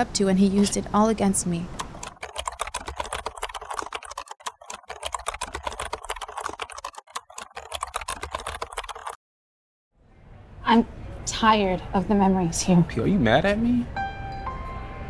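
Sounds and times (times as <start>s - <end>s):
rapid typing on keys: 1.7s - 9.2s.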